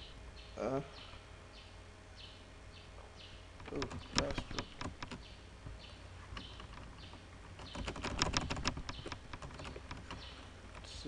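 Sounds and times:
computer keyboard typing: 3.6 - 5.3, 7.6 - 10.3.

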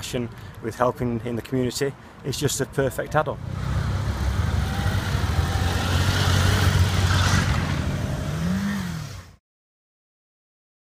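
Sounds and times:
motorcycle engine pulling away: 3.4 - 9.4.

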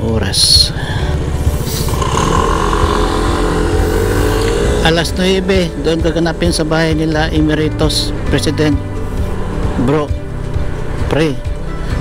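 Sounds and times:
scooter engine revving: 1.6 - 5.5.

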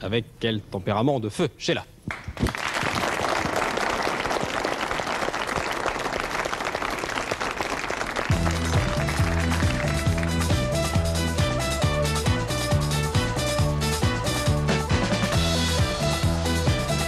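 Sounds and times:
audience applauding: 2.1 - 10.8.

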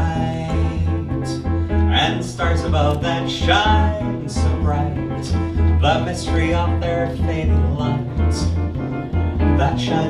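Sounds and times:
man singing wordless line: 0.0 - 8.7, 9.4 - 10.0
plucked double bass: 0.0 - 10.0.

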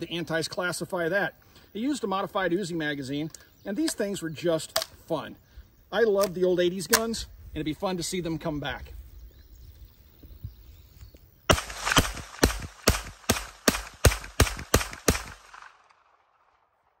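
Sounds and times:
gunshots: 11.5 - 16.6.

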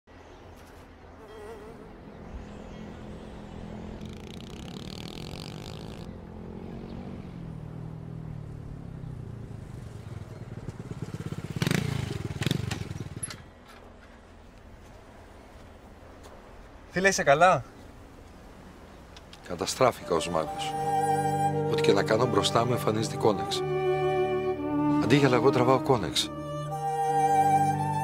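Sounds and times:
motorcycle engine revving: 2.8 - 13.4.

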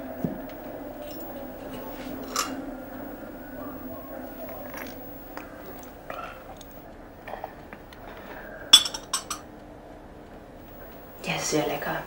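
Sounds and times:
porcelain cup clinking: 8.7 - 9.5.

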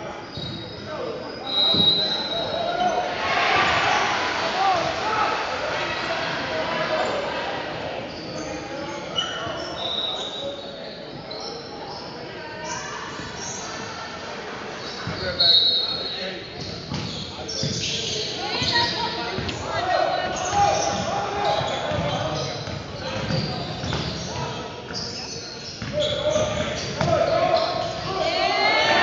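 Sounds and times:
sneakers squeaking: 0.0 - 4.3, 7.0 - 13.8, 14.8 - 29.0
basketball bouncing on wooden floor: 21.9 - 24.2.

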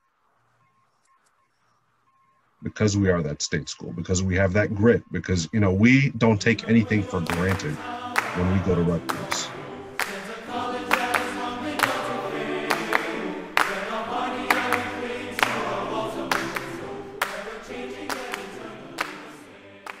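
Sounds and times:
choir singing: 3.9 - 20.0.

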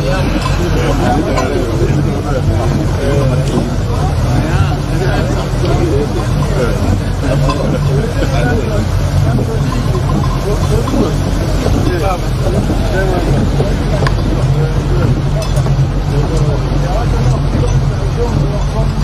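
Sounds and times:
motorboat engine drone: 0.0 - 19.0
voices talking: 0.0 - 19.0
wind buffeting microphone: 0.0 - 19.0.

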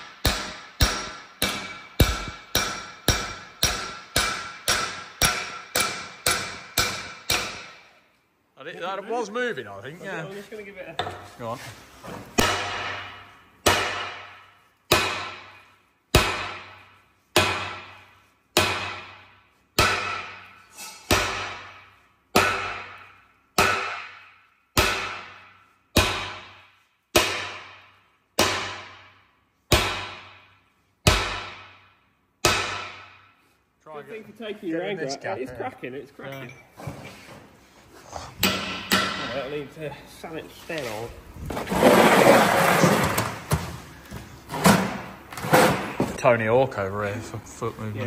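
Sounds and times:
heavy hammer blows on metal: 0.0 - 7.8.

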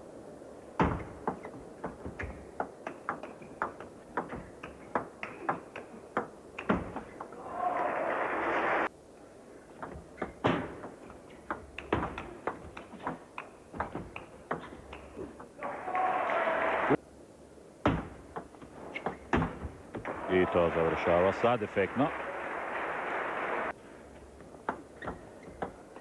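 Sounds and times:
table tennis ball clicking: 0.9 - 7.3, 9.8 - 15.5
crowd applause: 7.4 - 8.9, 15.6 - 17.0, 20.1 - 23.7.

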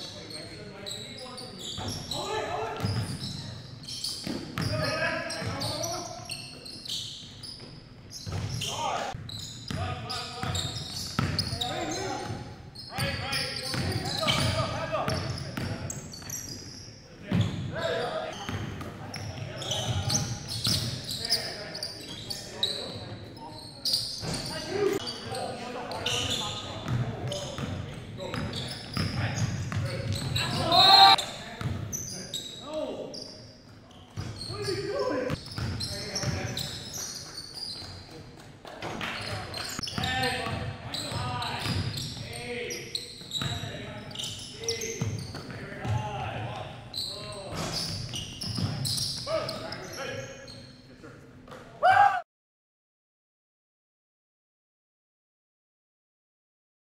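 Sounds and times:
players calling out: 30.0 - 31.4
loud voice: 30.4 - 31.2.

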